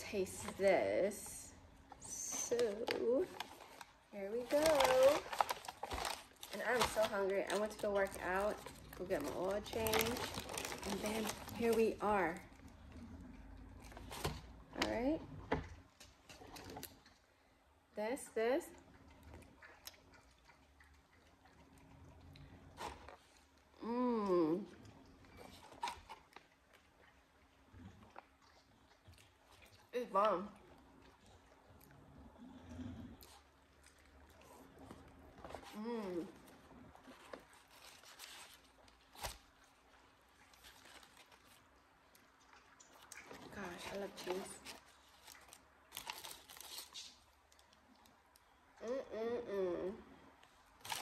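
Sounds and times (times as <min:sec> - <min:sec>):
paper wrapper crinkling: 0:02.3 - 0:12.3, 0:37.0 - 0:41.7, 0:42.8 - 0:47.8, 0:50.8 - 0:51.0
person chewing soft food: 0:18.8 - 0:23.8, 0:24.6 - 0:29.9, 0:30.6 - 0:48.8.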